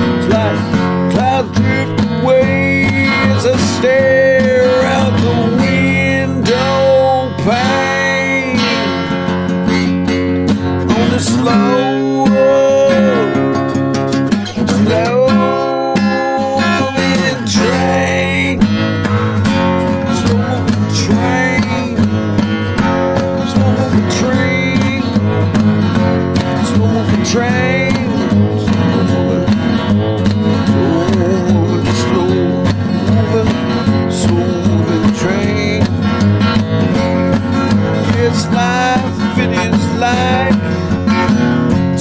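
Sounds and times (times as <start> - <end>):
acoustic guitar strumming: 0.0 - 42.0.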